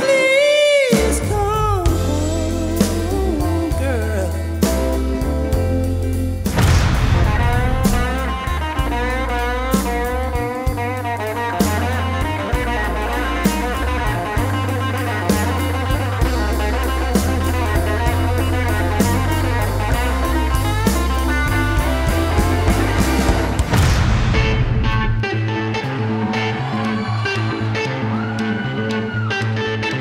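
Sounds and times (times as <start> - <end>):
blues-rock band playing: 0.0 - 30.0
electric guitar lead bending notes: 0.0 - 30.0.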